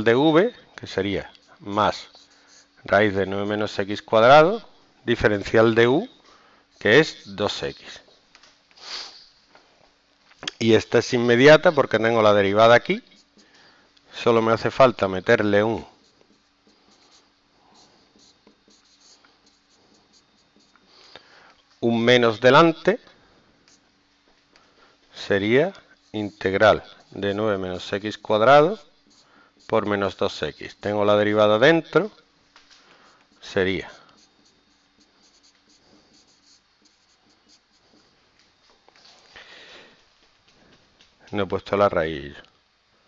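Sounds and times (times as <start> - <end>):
marker pen scratching on whiteboard: 1.4 - 3.5, 15.7 - 20.9, 25.9 - 31.0, 33.3 - 38.1.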